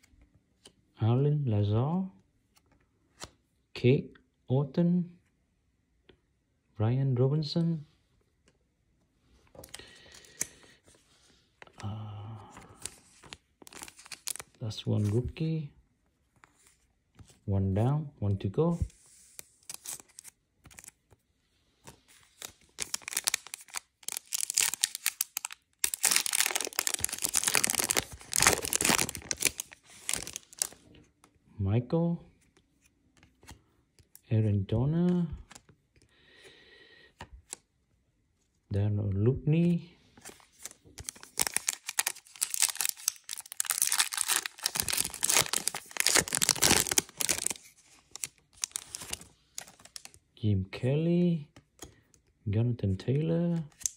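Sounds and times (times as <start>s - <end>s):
card pack wrapper tearing: 12.7s - 14.6s, 19.7s - 20.9s, 22.4s - 30.8s, 40.6s - 50.2s.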